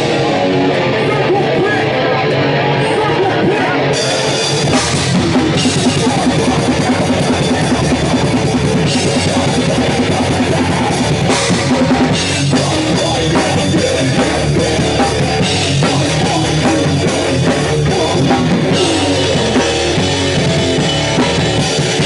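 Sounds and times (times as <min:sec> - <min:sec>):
bass guitar: 0:00.0 - 0:22.0
distorted electric guitar: 0:00.0 - 0:22.0
punk band playing live: 0:00.0 - 0:22.0
drum kit beat: 0:03.8 - 0:22.0.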